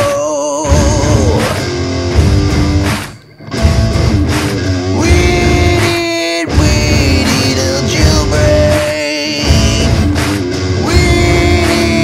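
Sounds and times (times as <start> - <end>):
heavy metal band with guitar: 0.0 - 12.0.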